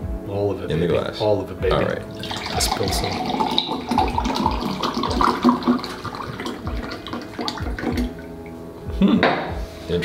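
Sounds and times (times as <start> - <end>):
coffee pouring into glasses: 2.0 - 8.4.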